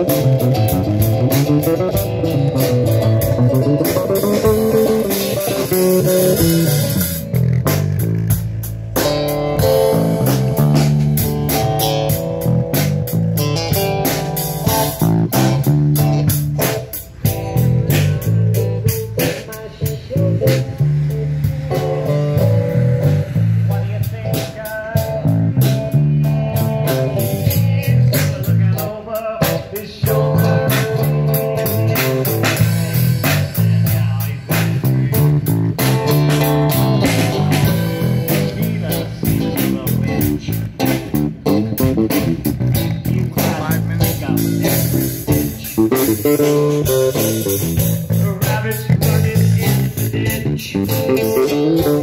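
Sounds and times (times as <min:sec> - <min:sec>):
nylon-string acoustic guitar: 0:00.0 - 0:07.7
drum kit strokes: 0:00.0 - 0:52.0
electric bass line: 0:00.0 - 0:52.0.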